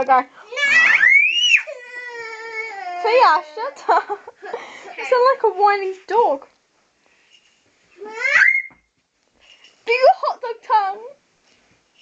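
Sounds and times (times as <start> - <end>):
girl's high-pitched squeal: 0.5 - 3.3, 8.0 - 8.9.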